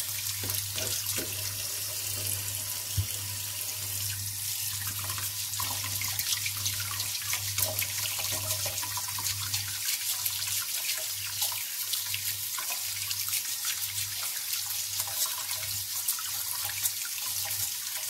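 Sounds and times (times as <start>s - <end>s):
tap running into sink: 0.2s - 3.4s.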